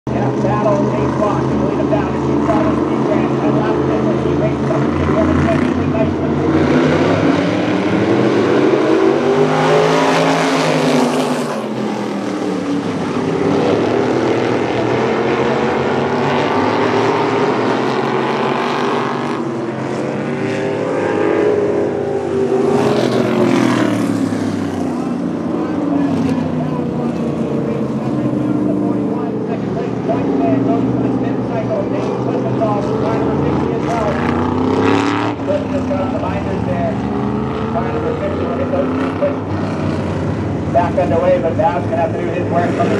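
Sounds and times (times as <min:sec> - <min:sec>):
race car engines passing: 0:00.1 - 0:42.9.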